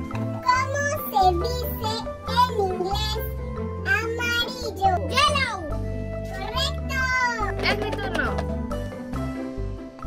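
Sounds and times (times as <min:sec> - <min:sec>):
light children's music: 0:00.0 - 0:10.0.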